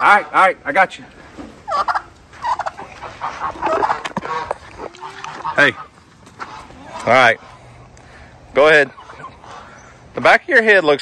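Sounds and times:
turkeys gobbling: 0:01.5 - 0:10.2.

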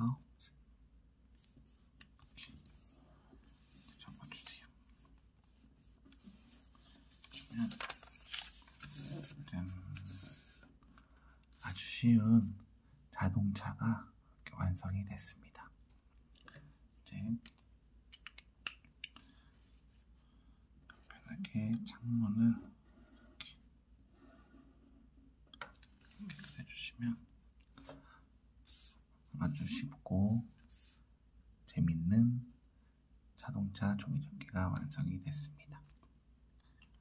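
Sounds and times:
paper rustling and creasing: 0:01.4 - 0:11.8, 0:25.8 - 0:26.6
marker scratching on paper: 0:08.8 - 0:09.4, 0:10.0 - 0:10.6.

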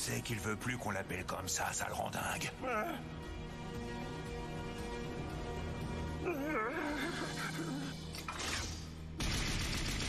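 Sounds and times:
soundtrack music with held notes: 0:00.0 - 0:09.1.

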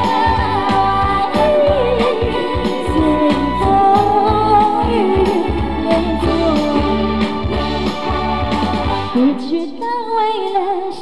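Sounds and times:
woman singing pop song: 0:00.0 - 0:07.5, 0:09.1 - 0:11.0
pop backing track: 0:00.0 - 0:11.0.

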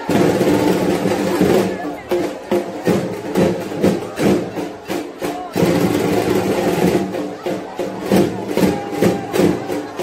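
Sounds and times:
crowd voices: 0:00.0 - 0:10.0
drum strikes: 0:00.0 - 0:10.0
music: 0:00.0 - 0:10.0.

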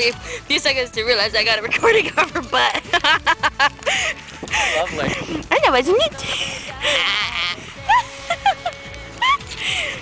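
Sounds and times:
breathy outburst: 0:03.8 - 0:05.4, 0:06.2 - 0:08.4, 0:09.2 - 0:10.0
high-pitched laughing squeals: 0:06.8 - 0:09.5.

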